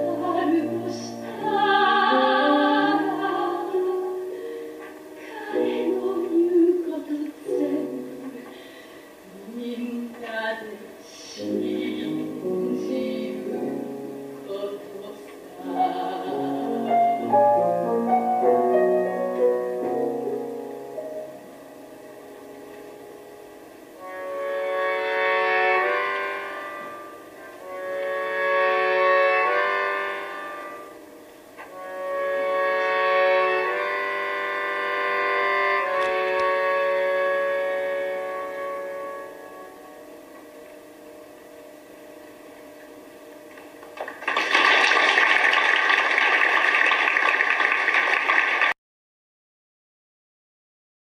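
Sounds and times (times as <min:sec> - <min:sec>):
piano chord ringing: 0:11.4 - 0:25.0
audience applauding: 0:43.7 - 0:48.8.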